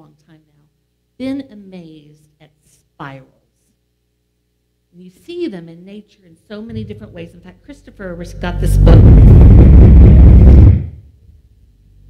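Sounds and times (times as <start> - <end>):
harsh distorted noise burst: 6.7 - 11.1.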